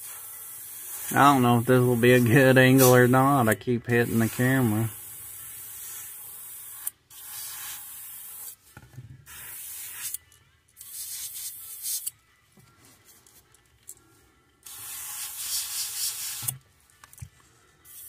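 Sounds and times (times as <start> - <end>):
airbrush spraying hiss: 0.0 - 10.2, 10.8 - 12.1, 14.6 - 16.6.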